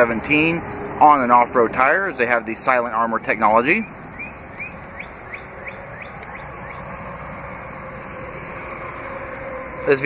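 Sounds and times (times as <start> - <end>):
outdoor background hum: 0.0 - 10.0.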